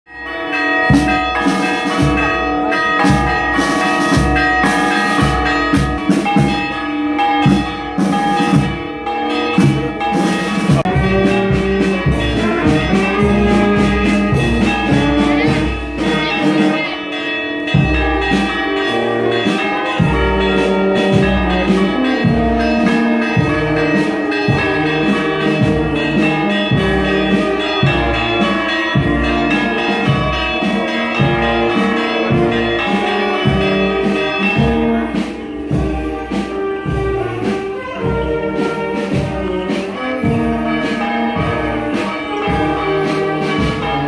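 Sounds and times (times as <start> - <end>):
church bells ringing: 0.1 - 44.0
brass band playing slow music: 0.2 - 44.0
wind instruments holding chords: 0.2 - 44.0
bass drum beat: 10.6 - 16.3.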